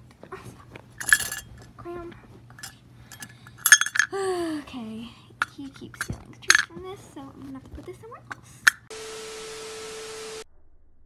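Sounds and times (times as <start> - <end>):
faint low hum: 0.0 - 11.0
tv static hiss: 8.9 - 10.5.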